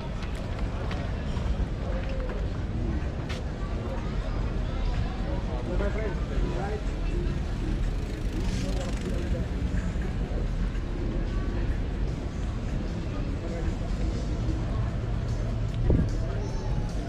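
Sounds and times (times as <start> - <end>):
passers-by talking indistinctly: 0.0 - 17.0.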